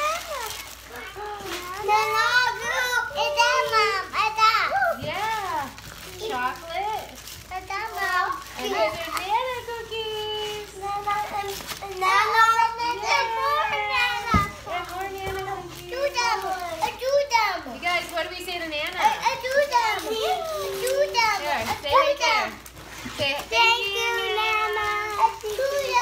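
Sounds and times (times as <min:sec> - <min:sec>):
children shouting and squealing: 0:11.9 - 0:14.7.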